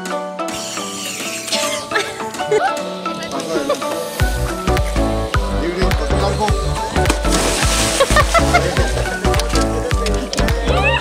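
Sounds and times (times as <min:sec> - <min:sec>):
upbeat background music: 0:00.0 - 0:11.0
splash into water: 0:07.0 - 0:09.7.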